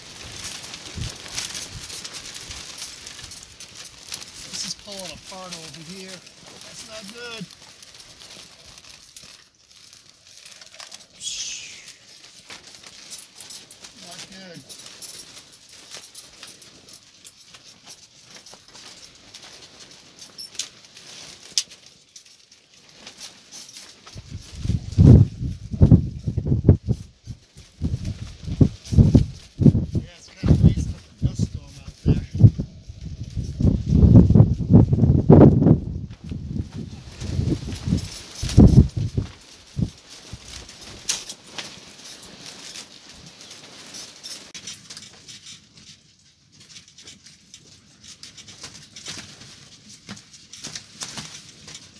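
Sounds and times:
storm wind gusts on microphone: 24.2s - 27.1s, 27.8s - 39.9s.

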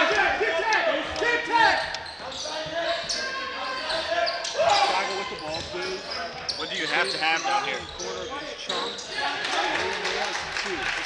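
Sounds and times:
players calling out: 0.0s - 10.8s.

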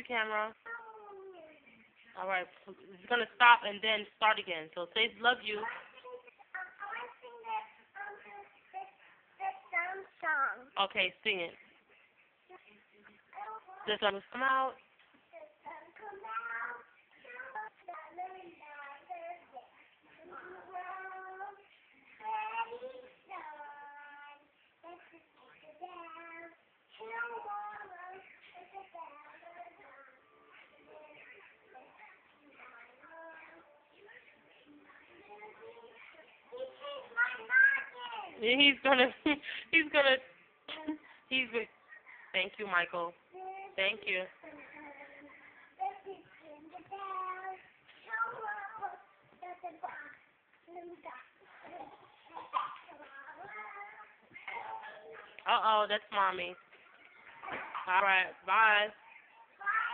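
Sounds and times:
young child singing: 15.3s - 34.3s, 44.5s - 54.8s, 59.6s - 59.9s.

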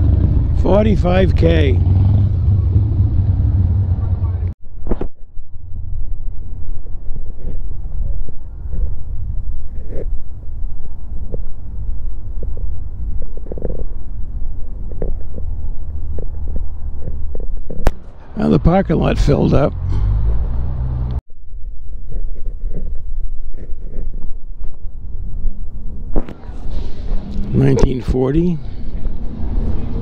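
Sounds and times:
steady low rumble: 0.0s - 30.0s.

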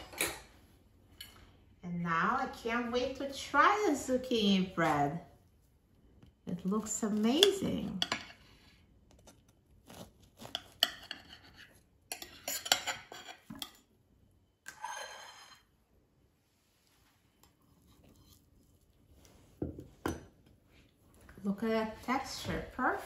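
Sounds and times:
knife cutting loaf on plate: 9.1s - 13.8s.

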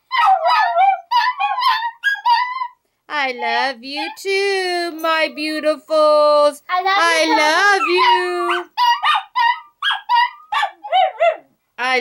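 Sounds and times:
small dogs yipping and howling: 0.0s - 2.8s, 7.0s - 11.5s.

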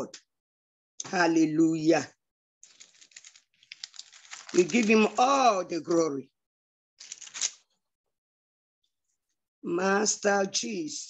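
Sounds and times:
pages rustling: 2.6s - 6.1s, 7.0s - 7.6s.

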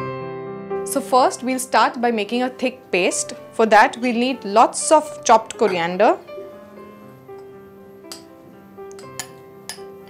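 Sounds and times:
background music with sustained notes: 0.0s - 10.0s
spoon clinking against glass bowl: 8.9s - 9.9s.

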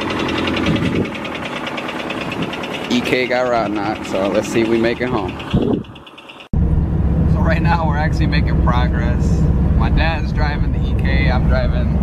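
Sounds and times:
engine knocking: 0.0s - 6.5s
car engine idling: 0.0s - 12.0s.

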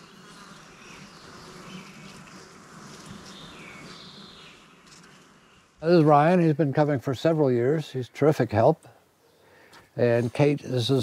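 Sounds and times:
faint insect buzzing: 0.0s - 8.2s.

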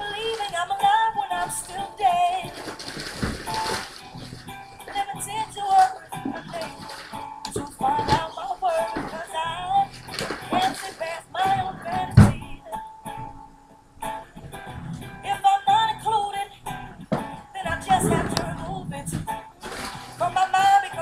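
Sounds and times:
recorded song with wavering vocals: 0.0s - 21.0s.

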